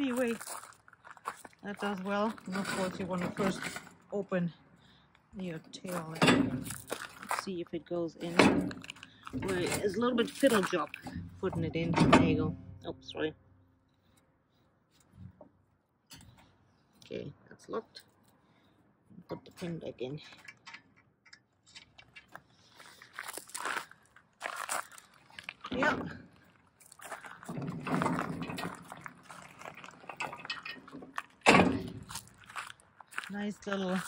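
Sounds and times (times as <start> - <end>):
footsteps on gravel: 0.0 - 4.1, 5.4 - 7.7, 8.7 - 11.0, 22.4 - 34.0.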